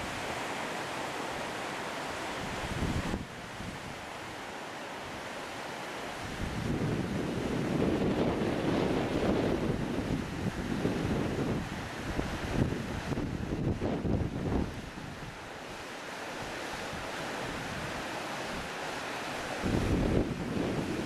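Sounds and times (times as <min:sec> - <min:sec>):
flowing water hiss: 0:00.0 - 0:21.0
wind buffeting microphone: 0:02.4 - 0:03.9, 0:06.3 - 0:15.3, 0:19.6 - 0:21.0.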